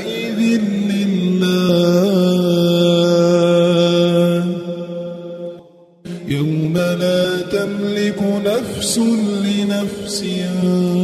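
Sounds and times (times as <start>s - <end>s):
person chanting recitation: 0.0s - 11.0s.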